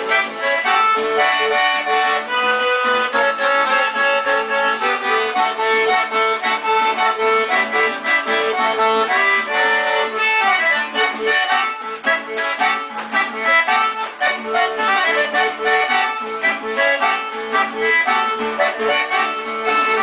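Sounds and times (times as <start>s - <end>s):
accordion playing dance tune: 0.0s - 20.0s.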